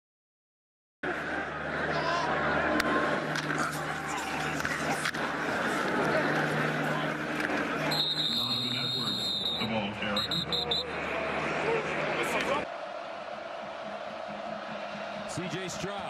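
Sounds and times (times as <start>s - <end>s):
stadium crowd noise: 1.0s - 16.0s
shrill whistle blasts: 7.9s - 10.8s.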